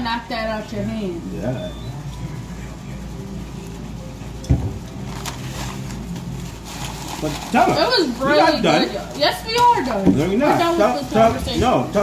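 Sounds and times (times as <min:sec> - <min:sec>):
steady low hum: 0:00.0 - 0:12.0
thump: 0:04.5 - 0:04.8
paper bag rustling: 0:04.9 - 0:11.9.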